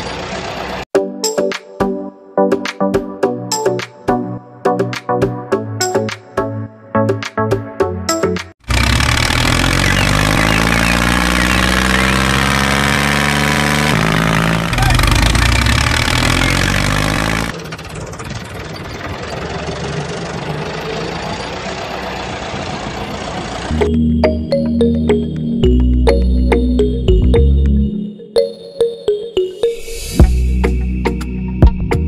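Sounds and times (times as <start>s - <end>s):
tractor engine running: 8.6s - 24.4s.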